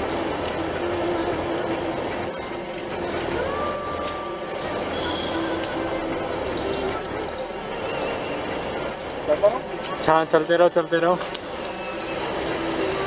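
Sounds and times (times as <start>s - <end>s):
car engine and tyre rumble: 0.0s - 13.0s.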